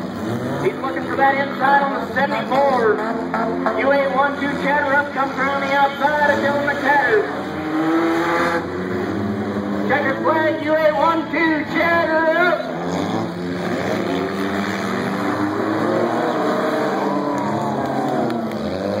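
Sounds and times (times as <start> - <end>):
race car engines revving: 0.0 - 19.0.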